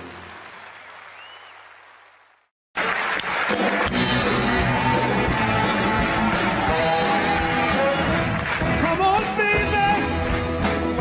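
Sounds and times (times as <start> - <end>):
audience applause: 0.0 - 9.4.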